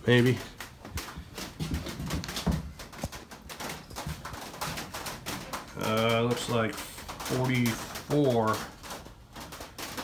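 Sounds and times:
light knocks clicks and rubbing: 0:00.0 - 0:10.0.

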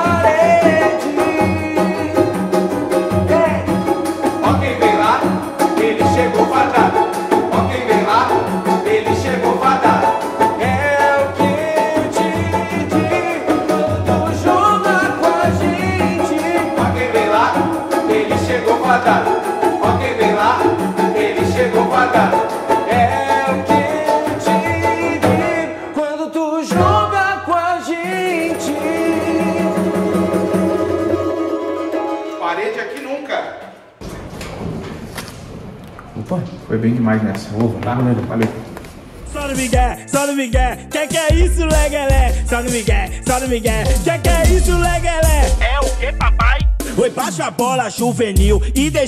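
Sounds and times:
large hand drum samba beat: 0:00.0 - 0:25.4, 0:28.4 - 0:31.5, 0:39.5 - 0:47.6
cavaquinho: 0:00.0 - 0:25.8, 0:28.0 - 0:33.2
pandeiro: 0:00.0 - 0:25.8, 0:28.0 - 0:33.2
banjo: 0:00.0 - 0:25.9, 0:26.7 - 0:33.1
man singing: 0:00.0 - 0:30.6, 0:39.2 - 0:49.0.

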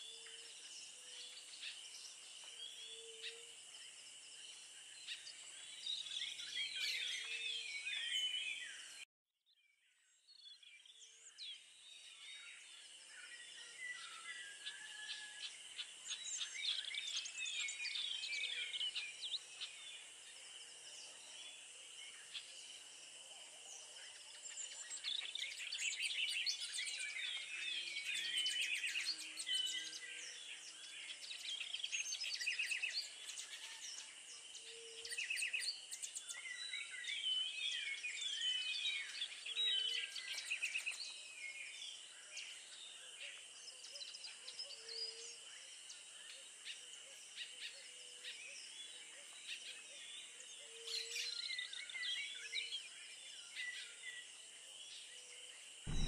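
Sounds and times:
birds chirping and trilling: 0:00.0 - 0:09.1, 0:09.8 - 0:23.0, 0:23.7 - 0:56.0.

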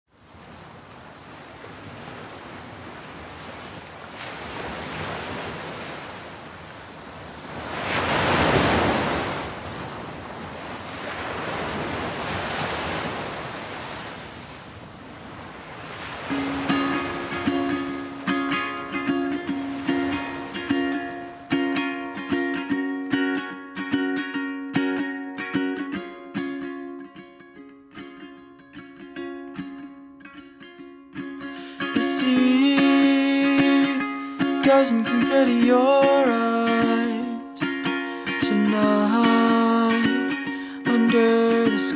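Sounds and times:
surf washing onto beach: 0:00.1 - 0:23.5
ukulele strumming chords: 0:16.2 - 0:41.9.

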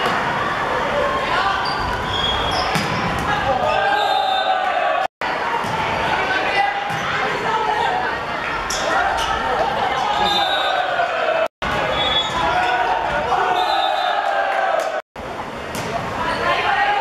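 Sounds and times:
people shouting and cheering: 0:00.0 - 0:15.0, 0:16.0 - 0:17.0
ball struck and hitting court: 0:02.7 - 0:03.3.

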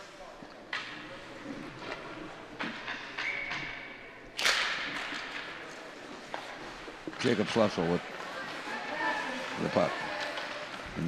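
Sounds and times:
skates and sticks on ice: 0:04.4 - 0:11.0.

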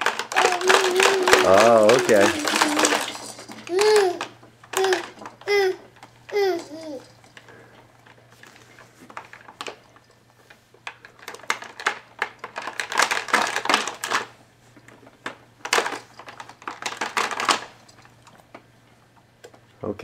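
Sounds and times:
plastic toy pieces clicking and rattling: 0:00.0 - 0:08.2, 0:10.8 - 0:14.3, 0:15.2 - 0:18.3.

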